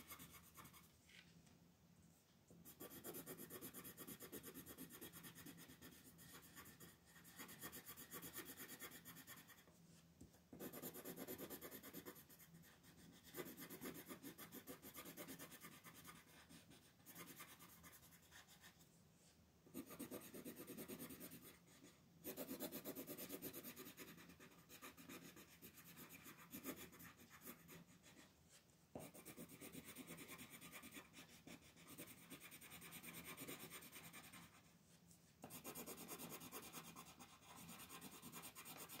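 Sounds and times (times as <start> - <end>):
pencil scratching on paper: 0.0 - 0.9, 2.6 - 9.7, 10.5 - 18.8, 19.7 - 34.7, 35.4 - 39.0.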